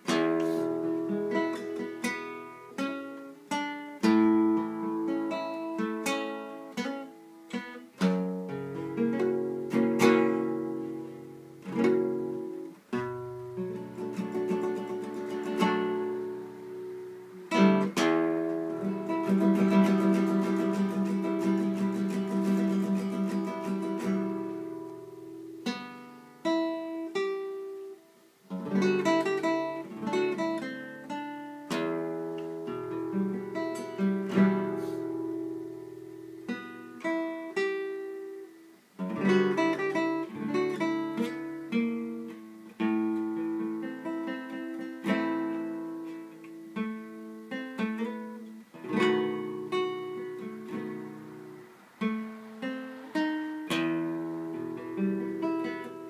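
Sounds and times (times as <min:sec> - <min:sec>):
acoustic guitar plucking and strumming: 0:00.0 - 0:56.0.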